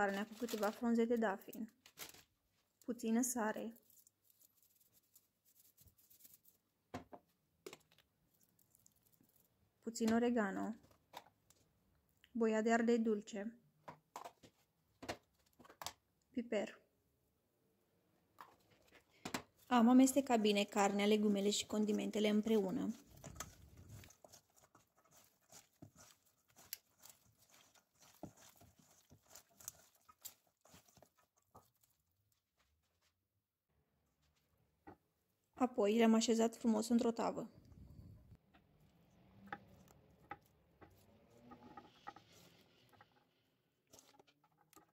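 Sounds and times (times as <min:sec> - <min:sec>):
hands kneading wet meat: 0:18.7 - 0:33.2.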